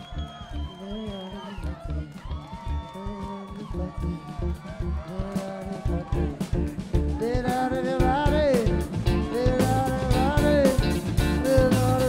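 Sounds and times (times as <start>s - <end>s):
bass guitar: 0.0s - 12.0s
drum kit steady beat: 1.7s - 12.0s
electric guitar: 5.7s - 12.0s.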